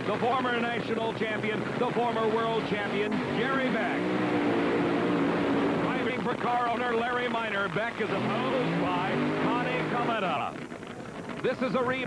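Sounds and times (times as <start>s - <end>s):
dragster engine droning: 0.0s - 12.0s.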